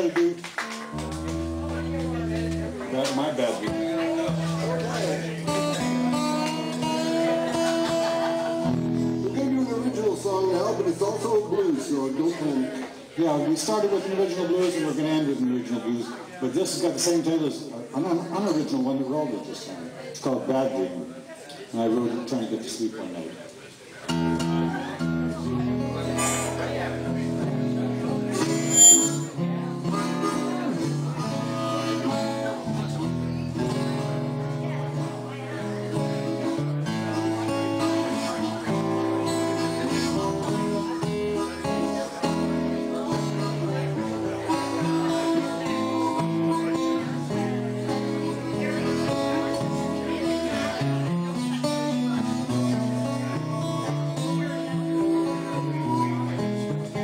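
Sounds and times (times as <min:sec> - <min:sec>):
acoustic guitar: 0:00.0 - 0:20.3, 0:24.0 - 0:57.0
harmonica: 0:28.3 - 0:32.4
loud high-pitched sound: 0:28.4 - 0:29.4.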